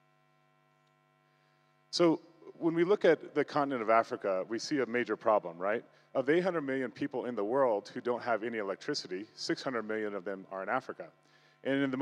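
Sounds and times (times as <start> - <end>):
faint electrical mains hum: 0.0 - 12.0
man's voice: 2.0 - 12.0.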